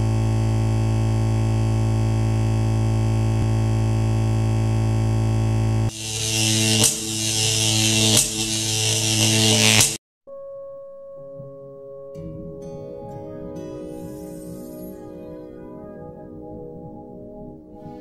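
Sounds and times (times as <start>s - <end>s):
low electronic buzzing drone: 0.0s - 10.0s
sharp electronic hits: 5.9s - 10.0s.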